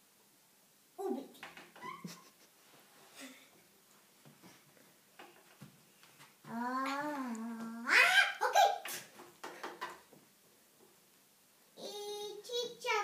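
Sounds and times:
young child making vocal sounds: 6.5s - 9.1s, 11.8s - 13.0s.

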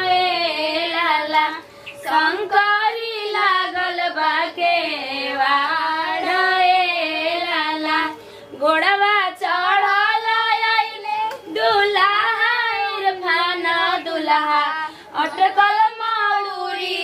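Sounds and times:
woman singing: 0.0s - 17.0s
breaths: 8.2s - 8.6s, 14.9s - 15.2s.

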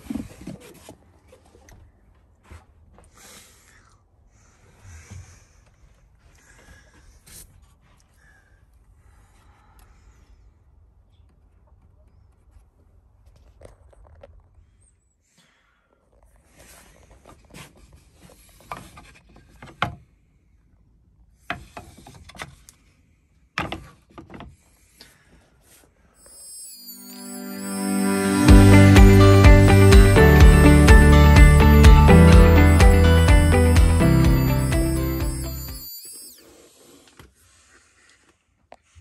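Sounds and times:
music: 26.9s - 35.9s.

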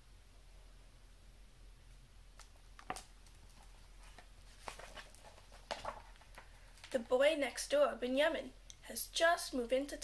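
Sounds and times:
book pages rustling: 2.4s - 7.0s.

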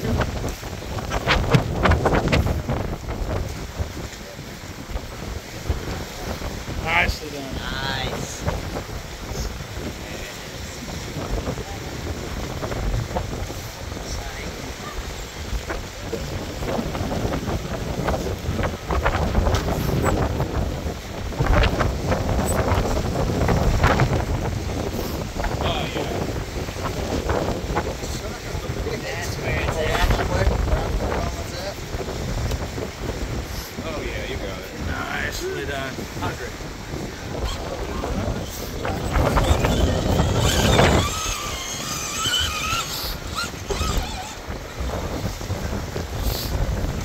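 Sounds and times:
wind buffeting microphone: 0.0s - 47.0s
indistinct voices: 37.3s - 44.5s.

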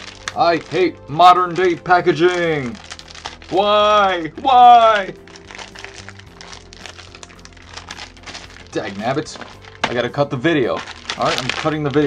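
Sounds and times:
background music with low notes: 0.0s - 12.0s
plastic packaging crinkling: 0.0s - 12.0s.

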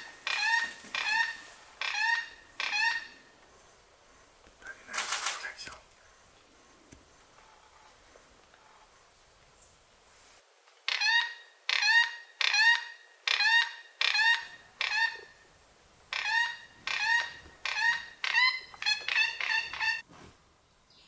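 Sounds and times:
toucan calling: 0.0s - 3.4s, 10.9s - 20.0s.

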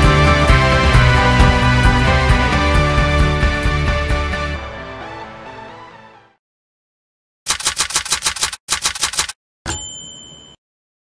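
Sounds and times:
typewriter keys clacking: 7.5s - 9.4s
typewriter carriage bell ding: 7.5s - 10.6s.

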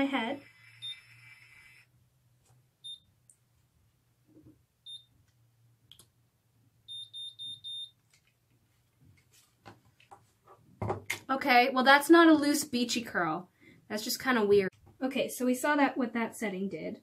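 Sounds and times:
hair curler beeping: 0.0s - 1.9s.

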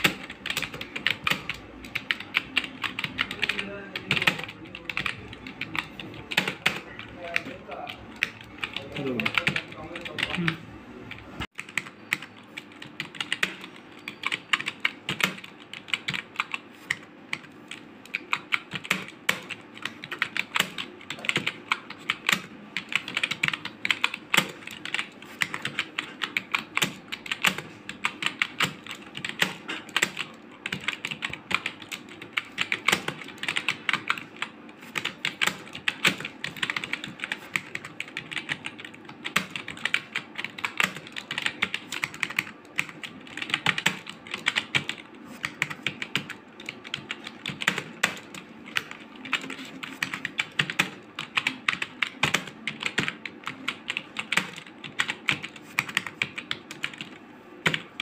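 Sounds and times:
keyboard keys clicking: 0.0s - 57.9s.

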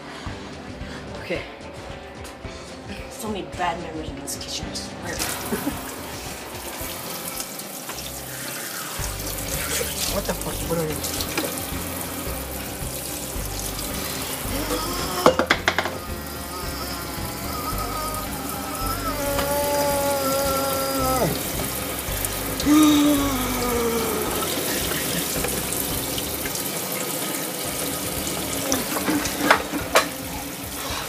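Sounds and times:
faucet running into steel sink: 5.2s - 31.0s
water splashing on skin: 5.2s - 31.0s.

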